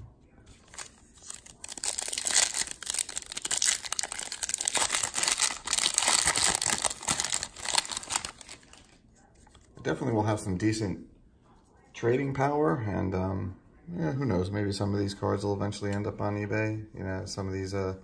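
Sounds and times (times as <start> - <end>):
plastic wrapper crinkling and tearing: 0.5 - 9.7.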